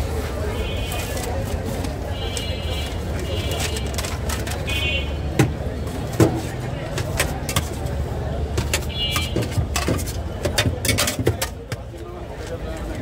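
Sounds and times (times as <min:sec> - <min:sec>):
street traffic rumbling: 0:00.0 - 0:13.0.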